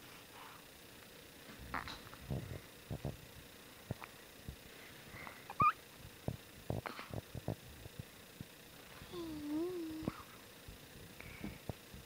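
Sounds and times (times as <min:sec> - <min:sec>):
baby squeaking: 0:05.5 - 0:05.8.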